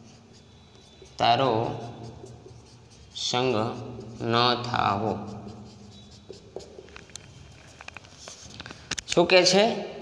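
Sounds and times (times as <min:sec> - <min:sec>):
marker scratching on whiteboard: 0:00.0 - 0:08.9.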